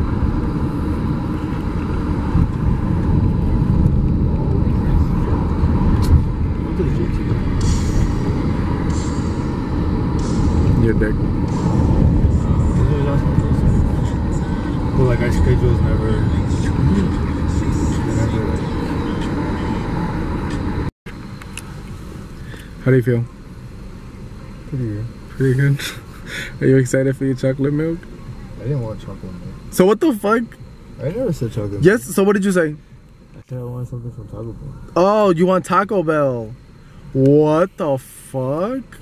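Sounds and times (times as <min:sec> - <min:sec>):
car road and engine noise: 0:00.0 - 0:39.0
faint voices: 0:10.7 - 0:20.7.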